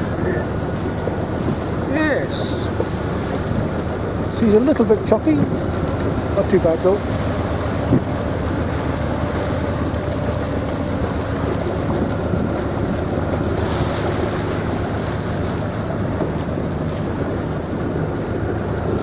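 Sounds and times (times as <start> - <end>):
boat engine running: 0.0 - 19.0
water rushing past hull: 0.0 - 19.0
wind on microphone: 5.3 - 19.0.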